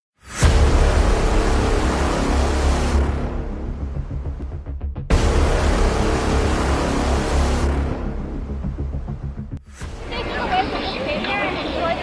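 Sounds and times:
dramatic intro music: 0:00.2 - 0:11.3
deep low drone: 0:00.3 - 0:10.0.

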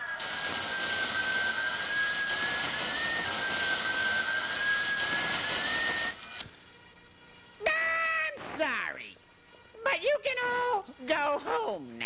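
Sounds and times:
steady high whine: 0:00.0 - 0:12.0
tape hiss: 0:00.0 - 0:12.0.

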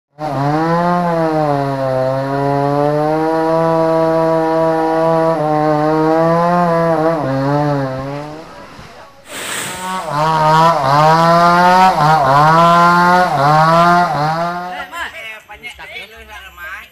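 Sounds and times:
chainsaw cutting at high revs: 0:00.2 - 0:08.7, 0:09.3 - 0:15.0
short rush of noise: 0:08.6 - 0:10.4.

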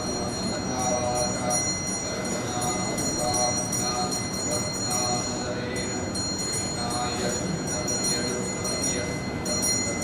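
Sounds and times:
voices chanting in a hall: 0:00.0 - 0:10.0.

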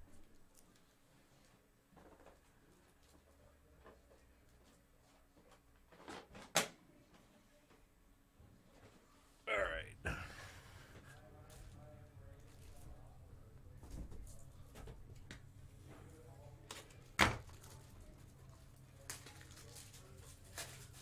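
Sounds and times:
low room hum: 0:06.9 - 0:21.0
faint voice: 0:09.5 - 0:13.2.

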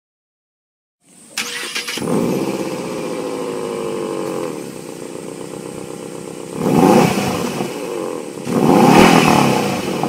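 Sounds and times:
car engine starting: 0:01.1 - 0:10.0
starter motor cranking with whine: 0:01.3 - 0:05.0.

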